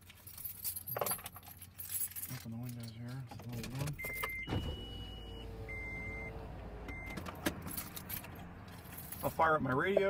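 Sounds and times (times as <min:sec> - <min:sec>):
car keys jingling: 0:00.0 - 0:10.0.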